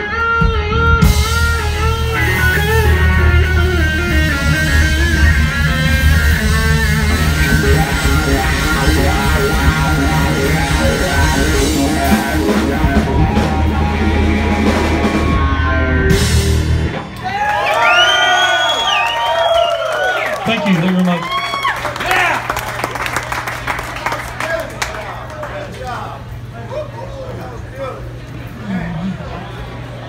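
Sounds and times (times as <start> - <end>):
live rock band playing: 0.0 - 18.0
amplifier hum: 1.2 - 17.1
crowd whooping and cheering: 6.1 - 25.9.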